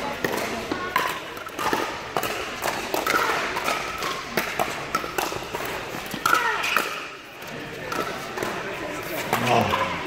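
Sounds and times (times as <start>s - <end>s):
paddles hitting plastic ball: 0.0s - 9.8s.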